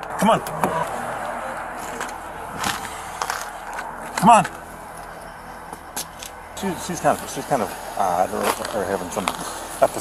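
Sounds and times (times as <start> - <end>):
outdoor hiss and rumble: 0.0 - 10.0.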